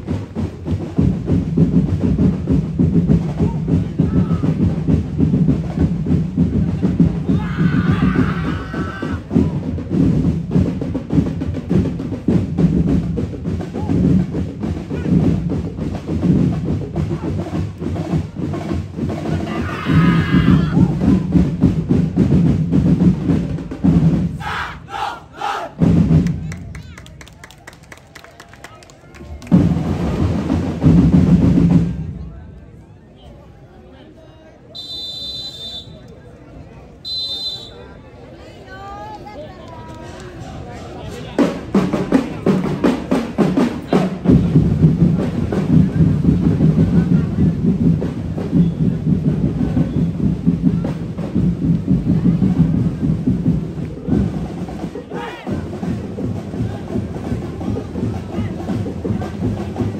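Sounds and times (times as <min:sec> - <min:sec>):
festival drumming: 0:00.0 - 0:28.3, 0:29.1 - 0:32.3, 0:40.4 - 0:59.9
group of voices shouting: 0:07.2 - 0:09.3, 0:19.3 - 0:21.2, 0:24.4 - 0:25.8, 0:55.1 - 0:55.6.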